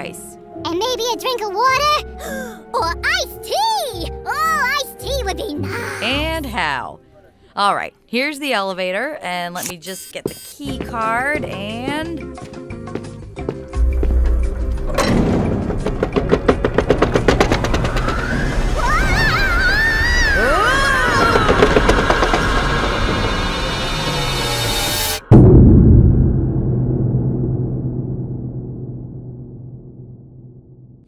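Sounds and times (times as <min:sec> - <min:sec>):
music: 0:00.0 - 0:08.6, 0:10.6 - 0:19.0
loud boom: 0:13.8 - 0:18.8, 0:22.2 - 0:31.0
low rumble: 0:13.8 - 0:20.0, 0:20.9 - 0:31.0
fast clicks and wobbling tones: 0:14.9 - 0:18.8, 0:20.4 - 0:24.8.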